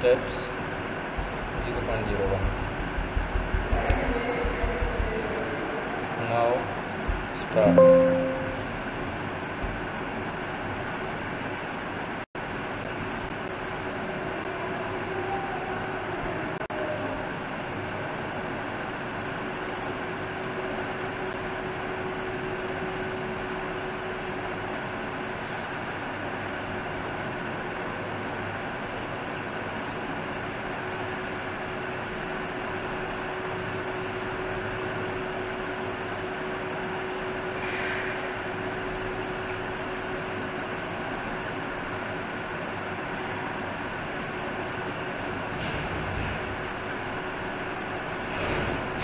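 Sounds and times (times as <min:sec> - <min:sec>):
faint higher sound: 0:07.6 - 0:08.9.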